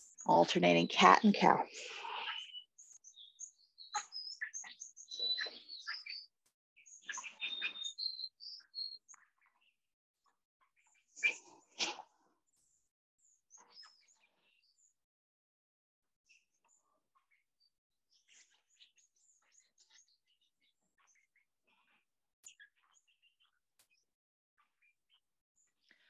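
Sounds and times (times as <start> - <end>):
small birds chirping: 0.0 - 15.1, 16.2 - 26.0.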